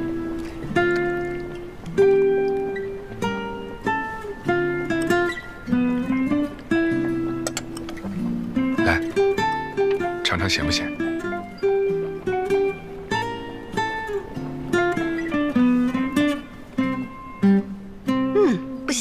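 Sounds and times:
acoustic guitar plucking: 0:00.0 - 0:19.0.

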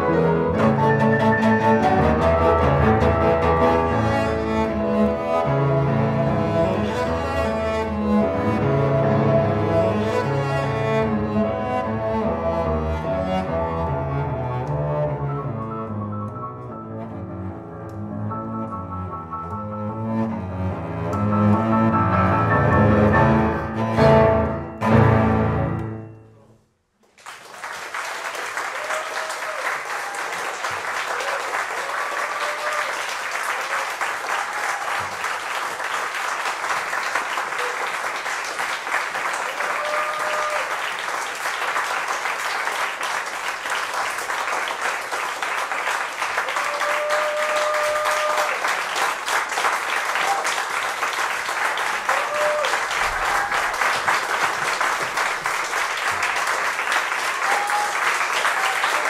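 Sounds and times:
audience applauding: 0:27.0 - 0:59.0
voices cheering: 0:28.4 - 0:35.2, 0:39.3 - 0:40.9, 0:46.4 - 0:48.8, 0:51.9 - 0:54.0, 0:57.1 - 0:59.0.

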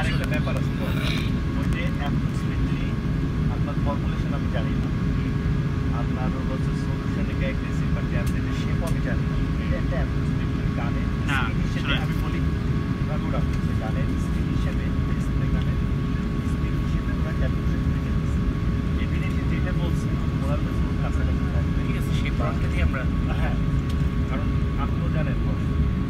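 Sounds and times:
faint voices: 0:00.0 - 0:02.9
airplane cabin low rumble: 0:00.0 - 0:26.0.

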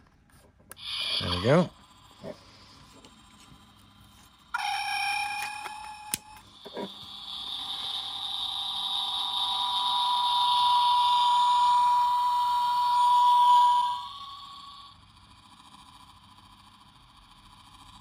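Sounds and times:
shimmering electronic tone: 0:00.8 - 0:02.8, 0:04.5 - 0:15.0.

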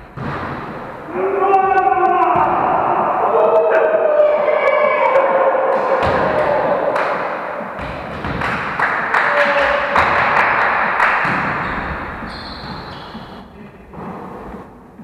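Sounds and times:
players' voices: 0:01.0 - 0:14.7
volleyball thudding on wooden floor: 0:06.0 - 0:06.4, 0:07.8 - 0:08.6.

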